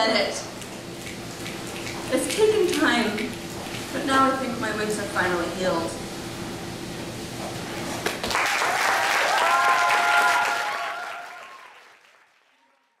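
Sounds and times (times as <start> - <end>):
audience applauding and cheering: 8.0 - 13.0.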